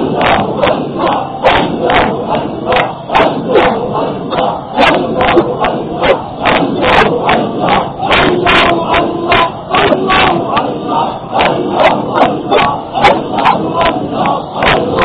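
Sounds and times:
distortion clicks: 0:00.0 - 0:15.0
man preaching loudly: 0:08.1 - 0:14.3.

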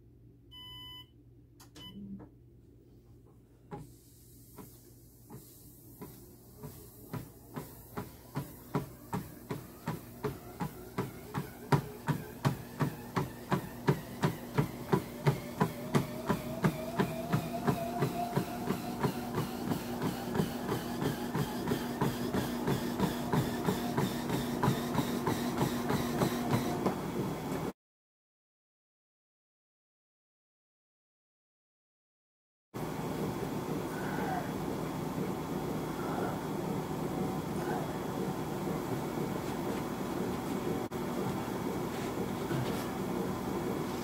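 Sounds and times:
treadmill motor whine: 0:04.5 - 0:27.7, 0:32.8 - 0:44.0
footfalls on treadmill belt: 0:04.6 - 0:27.7.

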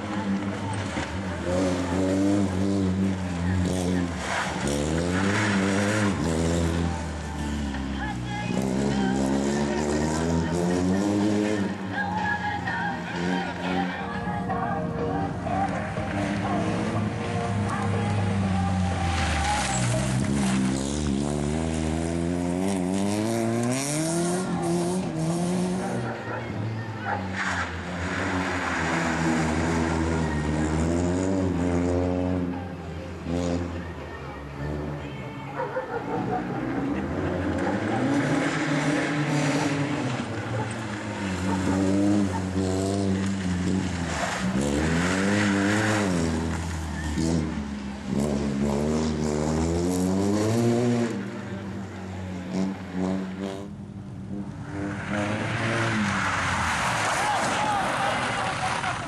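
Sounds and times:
rally car engine revving: 0:00.0 - 0:14.4, 0:15.1 - 0:59.0.

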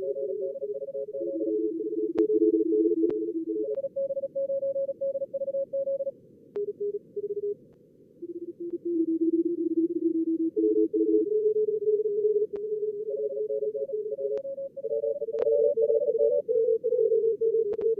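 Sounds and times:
morse code signals: 0:00.0 - 0:07.6, 0:08.2 - 0:17.9.

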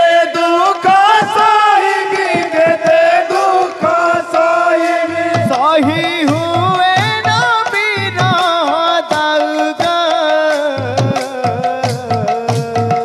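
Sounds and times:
clicking hand percussion: 0:00.0 - 0:13.0.

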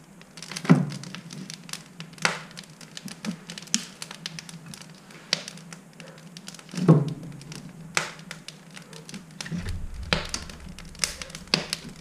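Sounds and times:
wood fire crackling: 0:00.3 - 0:12.0.

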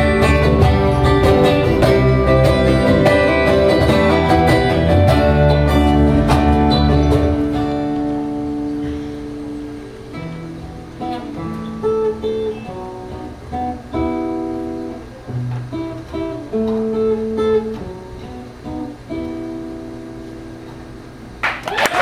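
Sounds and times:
acoustic guitar strumming: 0:00.0 - 0:21.4.

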